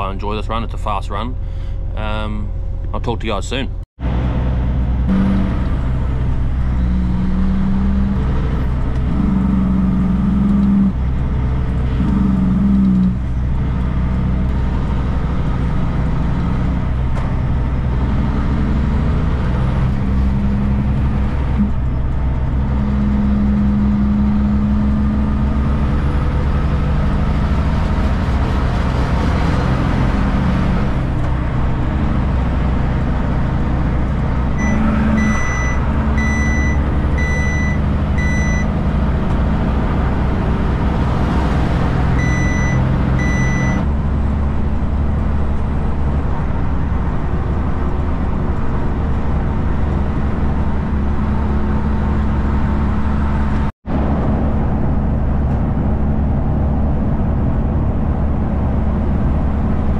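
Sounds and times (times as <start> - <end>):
diesel truck engine driving away: 0.0 - 59.9.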